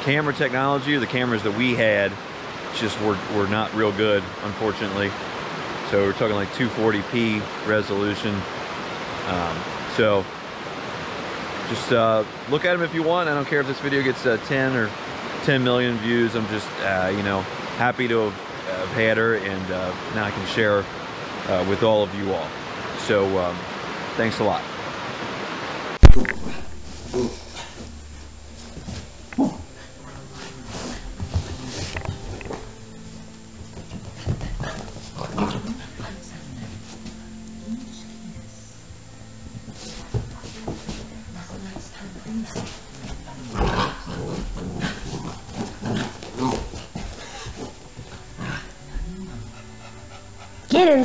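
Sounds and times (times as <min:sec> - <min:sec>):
steady hiss: 0:00.0 - 0:51.0
loud thump: 0:26.0 - 0:26.6
puppy vocalizing in play: 0:33.8 - 0:37.6, 0:41.4 - 0:51.0.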